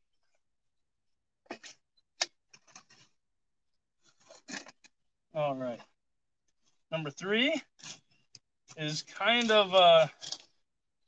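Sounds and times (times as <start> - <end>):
garden pots rustling and scraping: 4.0 - 6.0, 6.6 - 10.7.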